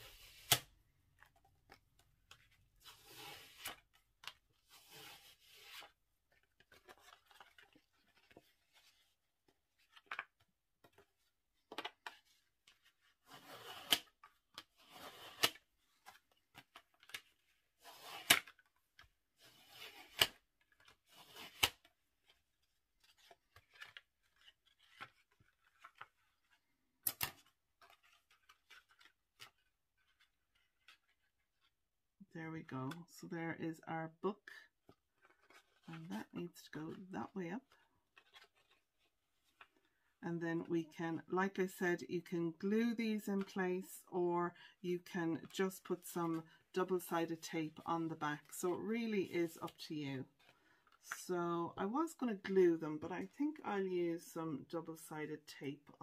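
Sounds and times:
bone folder scraping cardstock: 0.0s - 0.7s, 2.3s - 6.0s, 11.7s - 18.6s, 19.4s - 22.4s
paper handling: 0.0s - 31.8s, 34.8s - 36.3s, 37.6s - 40.0s.

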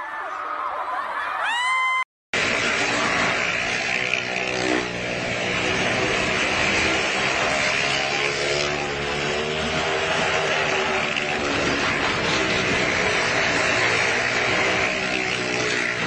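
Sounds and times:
car and motorcycle engines droning: 2.4s - 16.0s.

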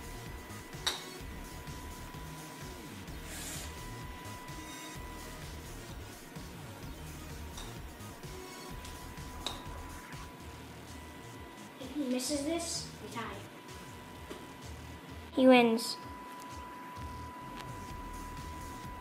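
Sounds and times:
low background music: 0.0s - 19.0s.

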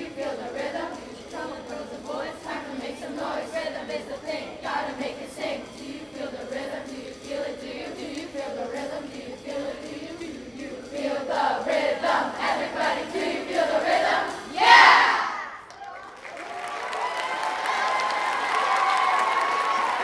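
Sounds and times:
choir singing over a beat: 0.0s - 15.6s
audience cheering and clapping: 15.3s - 20.0s.

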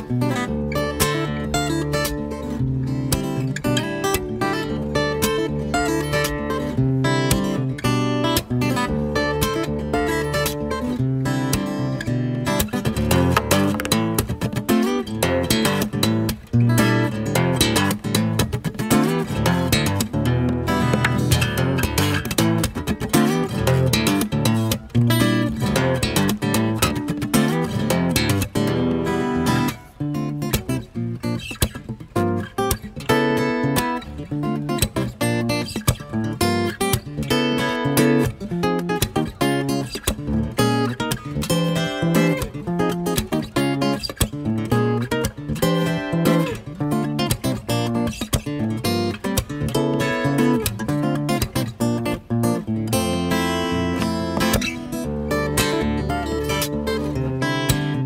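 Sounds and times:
acoustic guitar tapping: 0.1s - 58.0s.

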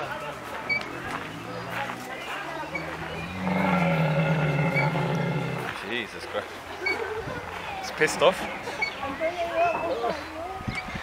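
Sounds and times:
camel calling: 2.6s - 5.8s.

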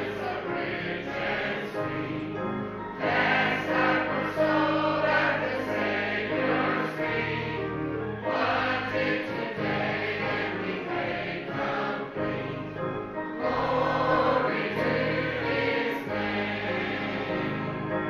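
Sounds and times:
mixed choir singing a hymn: 0.0s - 18.0s.

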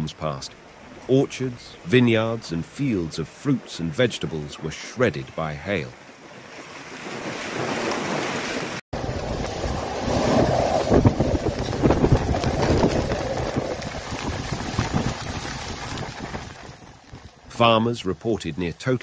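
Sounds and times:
heavy rain and hail: 9.0s - 18.1s
wind gusts buffeting microphone: 9.0s - 18.8s.

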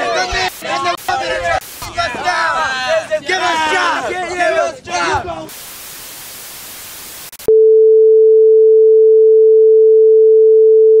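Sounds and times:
television static hiss: 0.0s - 3.1s, 5.4s - 7.5s.

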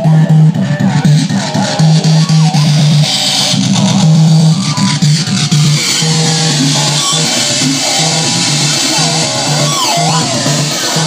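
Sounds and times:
distorted low electronic note: 0.0s - 11.0s
warbling bleeps: 0.0s - 11.0s.

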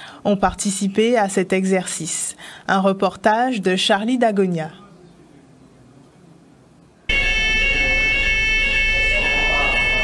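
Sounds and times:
fire alarm high-pitched tone: 7.1s - 10.0s.

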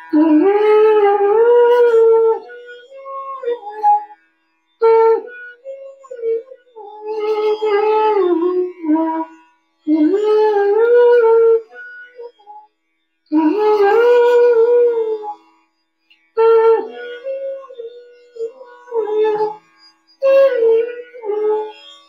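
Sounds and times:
bamboo flute playing melody: 0.0s - 4.2s, 4.8s - 12.6s, 13.3s - 15.4s, 16.4s - 19.6s, 20.2s - 21.9s.

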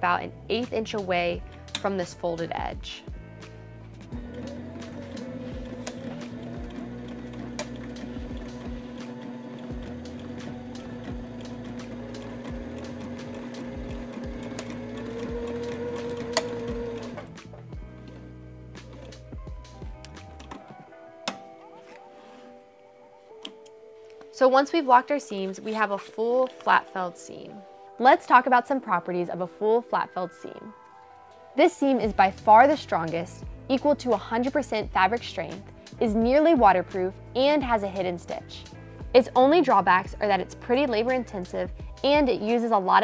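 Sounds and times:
background music: 0.0s - 43.0s
sewing machine stitching: 4.2s - 19.3s.

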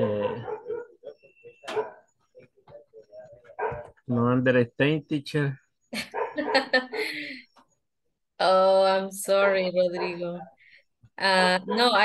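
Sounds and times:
people laughing: 6.0s - 7.4s.

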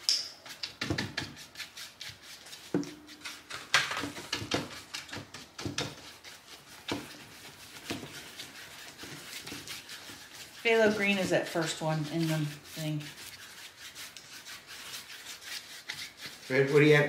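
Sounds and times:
paintbrush scrubbing canvas: 0.4s - 17.0s.

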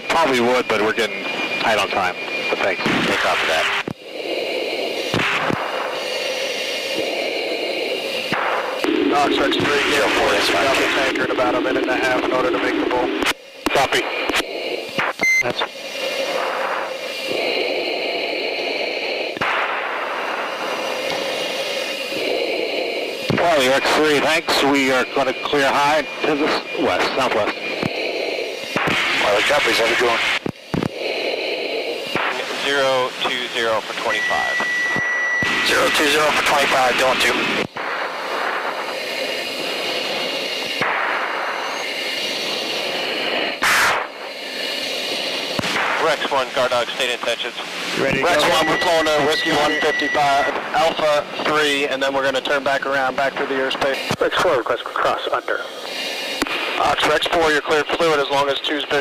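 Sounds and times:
jet cockpit air and engine noise: 0.0s - 59.0s.

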